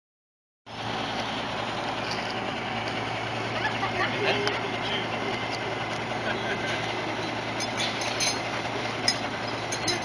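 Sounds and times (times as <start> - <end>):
engine humming: 0.7 - 10.0
outdoor noise rush: 0.7 - 10.0.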